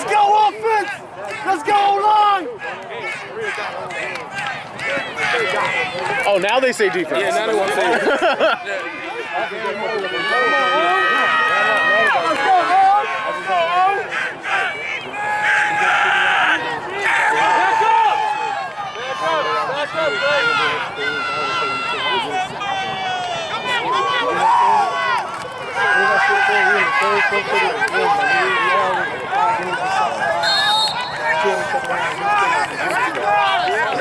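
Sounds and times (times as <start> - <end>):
long drawn-out shout: 0.0 - 6.3, 8.6 - 34.0
crowd yelling: 0.0 - 34.0.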